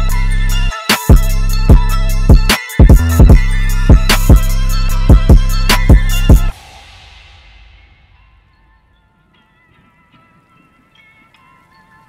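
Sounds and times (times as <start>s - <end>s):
low bass: 0.0s - 9.0s
high synth notes: 0.0s - 9.6s.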